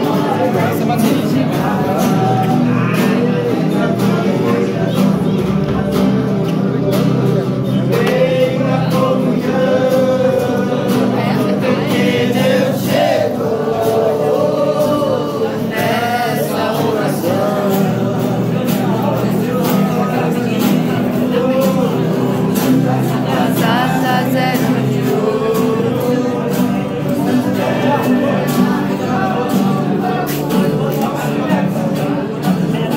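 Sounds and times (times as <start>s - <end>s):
group singing a worship song: 0.0s - 32.9s
strummed acoustic guitars: 0.0s - 32.9s.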